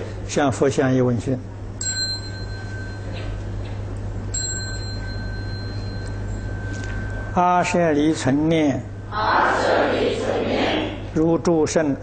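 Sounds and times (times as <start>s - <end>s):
small ritual bell ringing: 1.8s - 8.5s.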